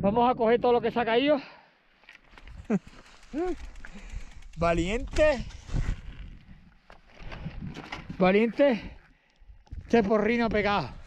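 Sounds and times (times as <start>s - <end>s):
bike handling rustling: 2.0s - 8.5s.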